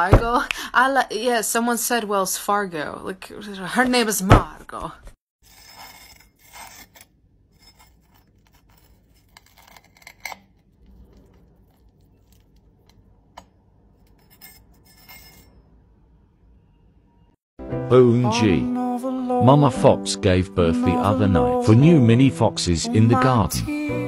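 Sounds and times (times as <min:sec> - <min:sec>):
knife cutting crisp cheese: 0:05.5 - 0:13.0.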